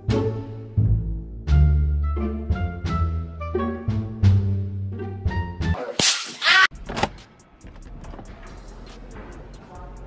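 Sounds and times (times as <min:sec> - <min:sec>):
background music: 0:00.0 - 0:06.0.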